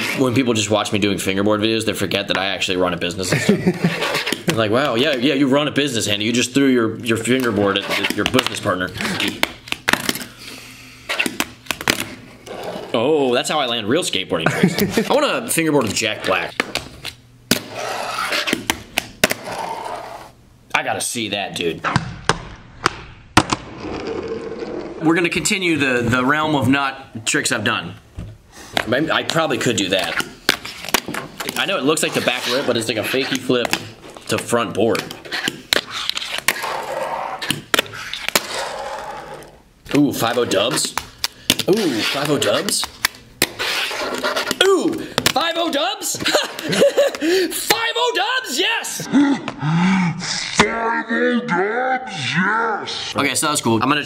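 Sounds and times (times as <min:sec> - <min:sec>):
fingerboard wheels scraping: 0:03.7 - 0:05.3, 0:07.4 - 0:09.4, 0:12.4 - 0:13.0, 0:17.6 - 0:18.6, 0:19.3 - 0:20.4, 0:23.7 - 0:25.1, 0:30.0 - 0:34.4, 0:35.0 - 0:39.6, 0:41.7 - 0:42.8, 0:43.5 - 0:44.6.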